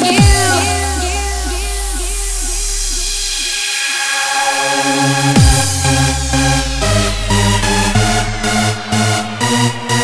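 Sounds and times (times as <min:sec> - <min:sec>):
held deep bass note: 0:00.2 - 0:03.5, 0:05.2 - 0:10.0
synth line dipping in pitch: 0:01.3 - 0:10.0.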